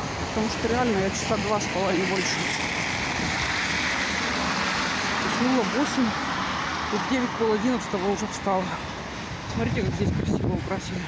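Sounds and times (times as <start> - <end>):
tyres hissing on wet road: 0.0 - 9.5.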